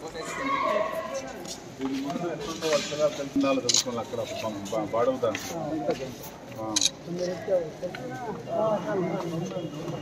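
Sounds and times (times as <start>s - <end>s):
men talking in a group: 0.0s - 10.0s.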